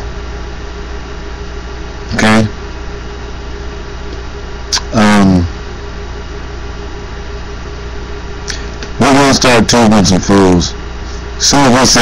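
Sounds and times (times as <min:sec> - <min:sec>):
low mechanical hum: 0:00.0 - 0:12.0.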